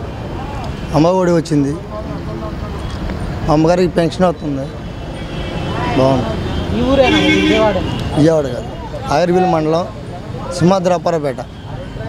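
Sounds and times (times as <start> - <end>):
road traffic noise: 0.0 - 12.0
man speaking: 7.0 - 11.6.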